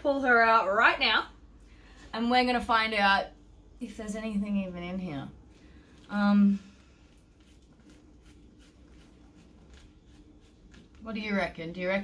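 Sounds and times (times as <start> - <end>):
faint low hum: 0.0 - 12.0
plastic plant pot rustling: 5.6 - 11.6.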